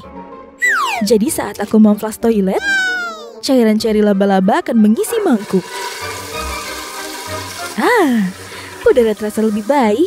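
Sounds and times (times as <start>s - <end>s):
background music: 0.0s - 10.0s
toilet flushing: 5.0s - 10.0s.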